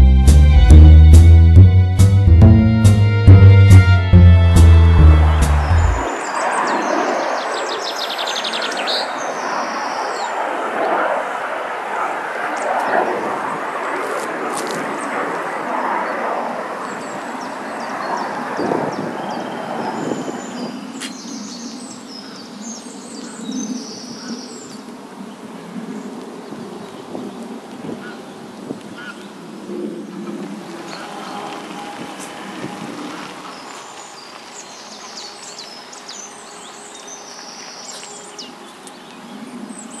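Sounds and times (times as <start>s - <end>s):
aircraft rushing: 0.0s - 21.0s, 29.4s - 39.9s
small birds chirping: 16.8s - 25.0s, 30.6s - 40.0s.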